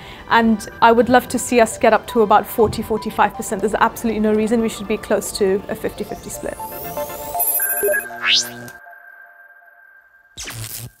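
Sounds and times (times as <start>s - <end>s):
high electronic tone: 6.0s - 11.0s.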